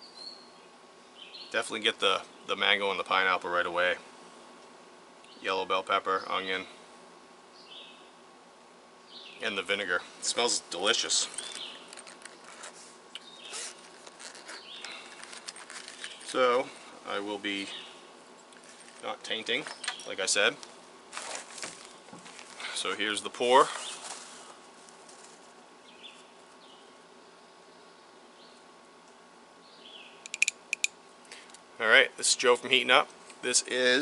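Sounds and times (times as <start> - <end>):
bird chirping: 0.0 - 1.6, 9.0 - 9.6, 11.2 - 12.6, 13.2 - 16.8, 19.5 - 20.2, 29.6 - 30.9
faint outdoor ambience: 0.0 - 34.0
sharp clicks: 30.2 - 31.0.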